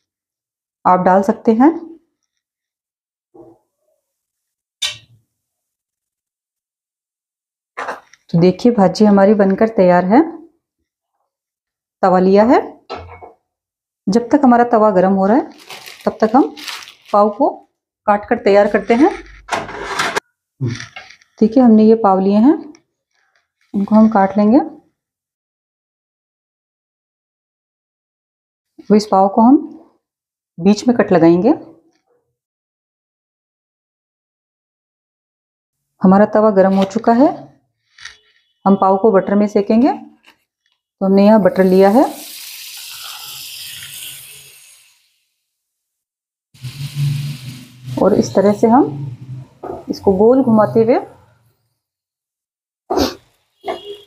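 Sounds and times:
plastic bread bag crinkling: 0:15.4 - 0:17.4
butter sizzling on hot pan: 0:41.4 - 0:45.4.

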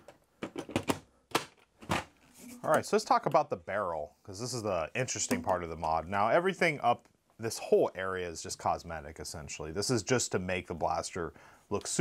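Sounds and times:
plastic parts clacking: 0:00.0 - 0:02.8.

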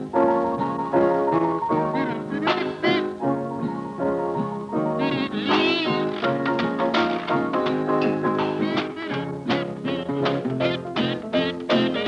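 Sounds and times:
instrumental soundtrack music: 0:00.0 - 0:12.0.

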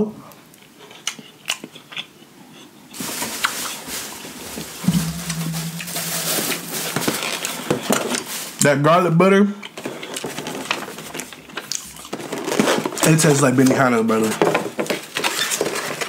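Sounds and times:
close chewing with mouth clicks: 0:00.6 - 0:02.7, 0:09.7 - 0:12.4.

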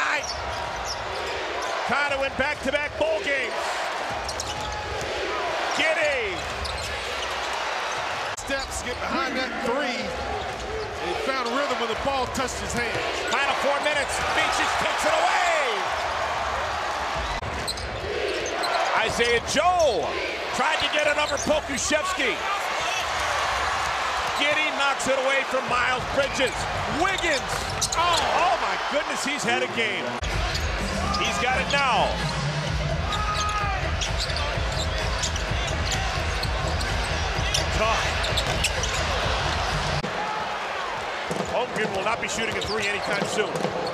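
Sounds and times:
arena crowd noise: 0:00.0 - 0:43.9
sneakers squeaking: 0:00.2 - 0:01.9, 0:04.0 - 0:05.7, 0:06.3 - 0:09.2, 0:10.0 - 0:13.4, 0:17.0 - 0:19.2, 0:20.8 - 0:22.1, 0:26.1 - 0:28.5, 0:30.2 - 0:31.6, 0:32.2 - 0:40.0, 0:41.3 - 0:43.9.

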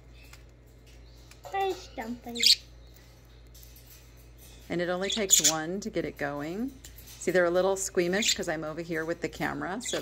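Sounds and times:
budgerigar chirp: 0:02.4 - 0:02.6.

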